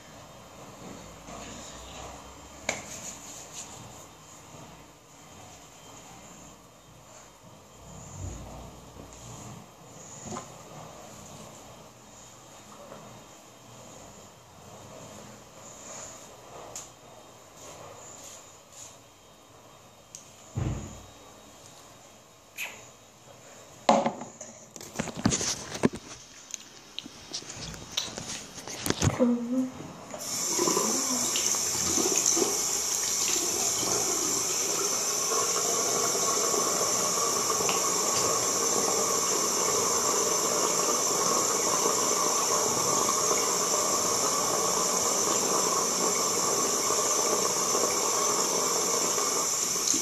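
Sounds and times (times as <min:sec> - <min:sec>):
steady hiss: 0:30.2 - 0:50.0.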